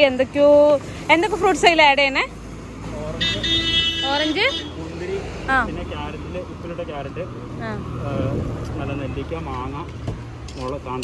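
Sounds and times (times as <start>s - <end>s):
road traffic rumble: 0.0s - 11.0s
vehicle horn blaring: 3.2s - 4.8s.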